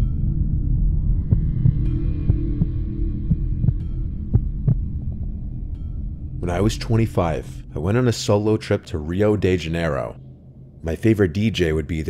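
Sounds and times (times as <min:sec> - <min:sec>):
deep throbbing thumps: 0:00.0 - 0:11.9
low droning hum: 0:00.0 - 0:12.0.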